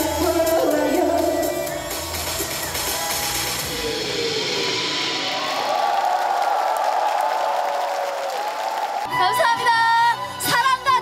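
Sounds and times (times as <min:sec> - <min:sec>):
bass and drums: 0:00.0 - 0:06.1
audience cheering: 0:02.6 - 0:09.2.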